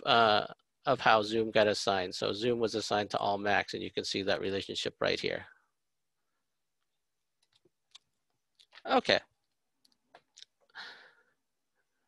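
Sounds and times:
computer mouse clicks: 6.8 - 8.8.

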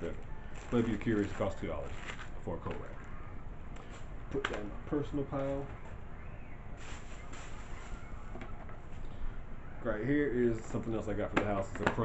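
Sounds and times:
handling rustle and bump: 0.0 - 3.0, 6.8 - 9.0, 10.6 - 12.0
steady background hiss: 0.0 - 12.0.

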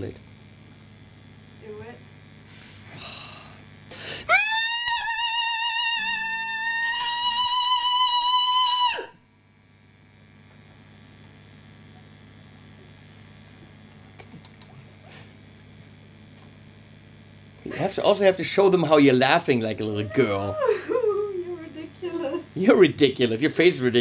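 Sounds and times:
man screaming high-pitched note: 4.3 - 9.2, 19.9 - 20.8.

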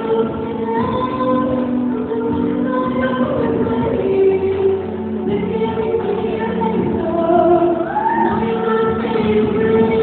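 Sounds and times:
live musical backing: 0.0 - 10.0.

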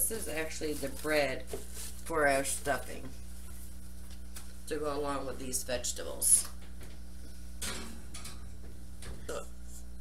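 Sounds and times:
low electrical hum: 0.0 - 10.0
soft rustle: 0.1 - 2.6.

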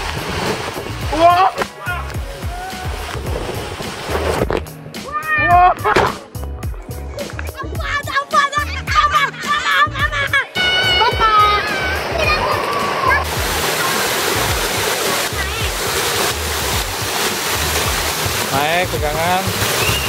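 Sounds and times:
water pouring and splashing: 0.0 - 6.4, 9.0 - 20.0
background music with a beat: 0.0 - 15.0, 15.6 - 20.0
children shouting: 5.0 - 5.8, 7.8 - 14.0.

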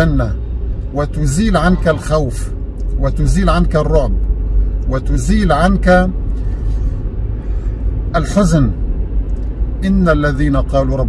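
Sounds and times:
car rumble from inside cabin: 0.0 - 11.0.

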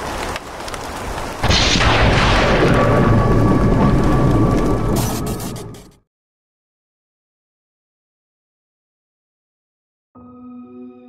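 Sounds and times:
steady rain: 0.0 - 5.9
rolling thunder: 1.0 - 5.9.

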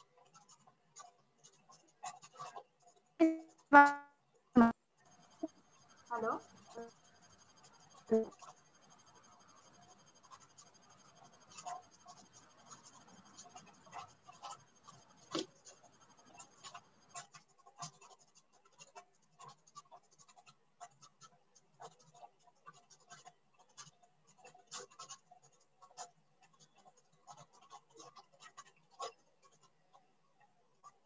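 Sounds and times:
faint small clicks and scratches: 0.0 - 31.0.

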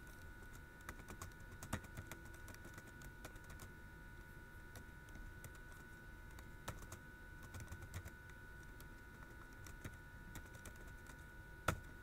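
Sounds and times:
keyboard typing: 0.0 - 3.7, 4.7 - 11.9
faint steady whine: 0.0 - 12.0.

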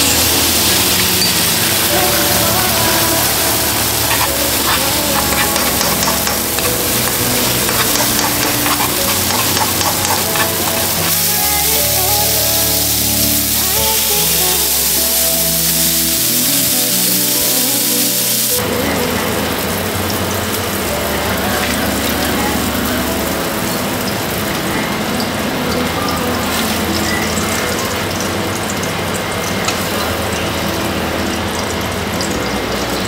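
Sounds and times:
food sizzling in a skillet: 0.0 - 31.9
background music: 0.0 - 33.0.

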